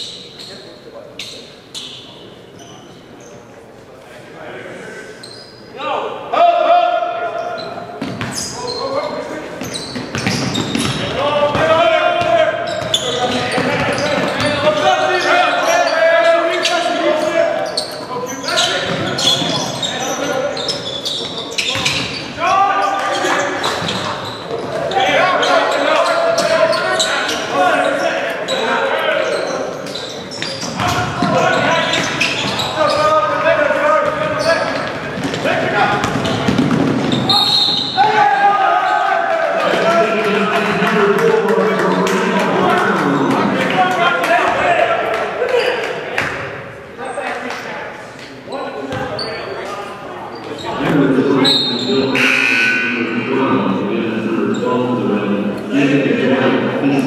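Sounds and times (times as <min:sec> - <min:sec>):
basketball bouncing on hardwood: 0:10.0 - 0:12.9, 0:36.0 - 0:37.2
voices calling out: 0:48.5 - 0:57.0.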